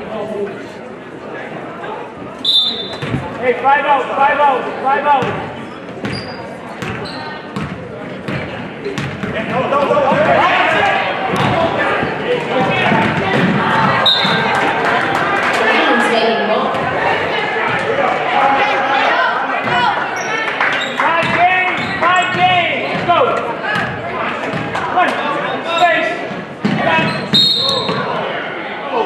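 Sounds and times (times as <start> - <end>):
voices of spectators: 0.0 - 29.0
shoe squeaks: 2.4 - 3.2, 6.0 - 7.5, 14.0 - 14.4, 26.9 - 28.1.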